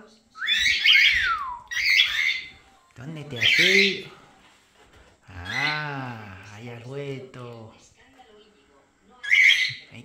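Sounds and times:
cockatiel squawk: 0.4s - 2.5s, 9.2s - 9.8s
cockatiel calling: 0.4s - 2.6s, 3.4s - 4.1s, 5.4s - 5.8s, 9.2s - 9.9s.

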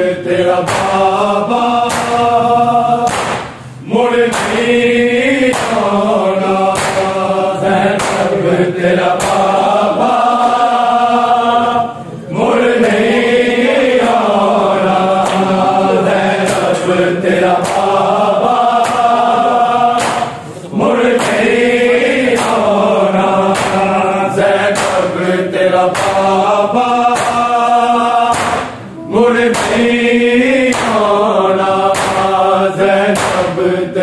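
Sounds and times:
men chanting in unison: 0.0s - 34.0s
hands slapping bare chests: 1.9s - 2.2s, 3.0s - 3.6s, 4.3s - 4.6s, 5.4s - 5.9s, 6.7s - 7.2s, 7.9s - 8.4s, 9.2s - 9.6s, 15.2s - 15.5s, 17.6s - 18.0s, 18.8s - 19.2s, 20.0s - 20.4s, 21.2s - 21.4s, 22.3s - 22.6s, 23.5s - 23.9s, 24.8s - 25.1s, 25.9s - 26.3s, 27.1s - 27.5s, 28.3s - 28.8s, 29.5s - 29.9s, 30.7s - 31.1s, 31.9s - 32.3s, 33.2s - 33.5s.

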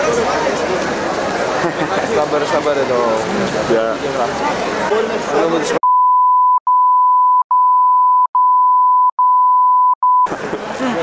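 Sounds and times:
crowd talking: 0.0s - 5.8s, 10.3s - 11.0s
steady electronic beep: 5.8s - 10.3s.

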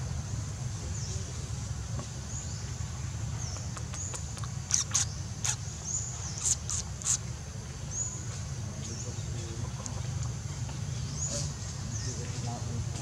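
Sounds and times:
high-pitched animal chirps and squeaks: 3.6s - 5.6s, 6.3s - 7.3s.

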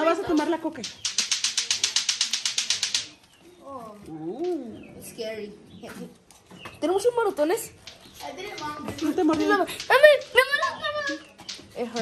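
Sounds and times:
rapid mechanical clicks: 0.3s - 3.1s, 7.8s - 12.0s.

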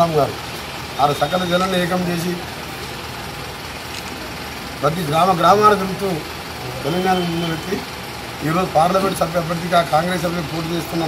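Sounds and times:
street noise: 0.0s - 11.0s
vehicle engine idling: 0.0s - 11.0s.

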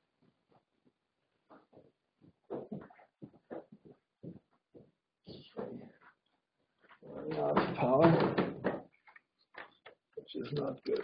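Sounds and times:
knocks and clatter of equipment: 6.9s - 9.8s.

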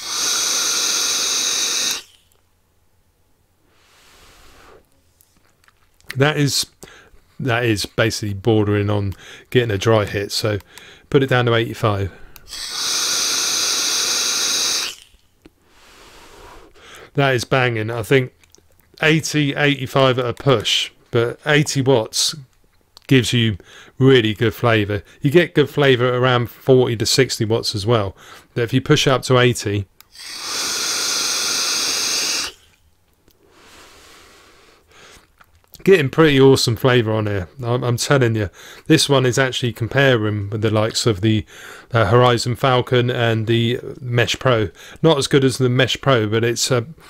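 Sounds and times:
breathy exhale: 0.0s - 2.2s, 3.7s - 4.9s, 12.1s - 17.1s, 30.1s - 32.8s, 33.4s - 35.2s, 41.5s - 41.9s
vape hissing air: 0.0s - 2.4s, 3.7s - 4.9s, 12.3s - 17.0s, 30.0s - 32.8s, 33.4s - 34.9s.

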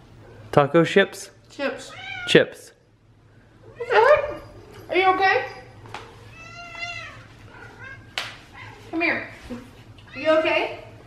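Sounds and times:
cat meowing: 1.8s - 2.4s, 6.3s - 8.9s.

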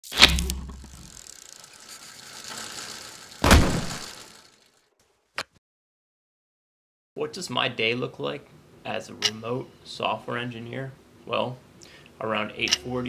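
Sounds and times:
heavy impact hits: 3.4s - 4.2s.

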